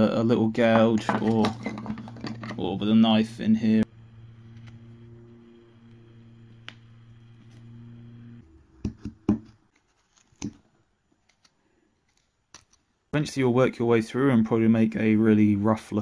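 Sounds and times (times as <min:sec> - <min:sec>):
steady low hum: 0:00.9 - 0:08.5.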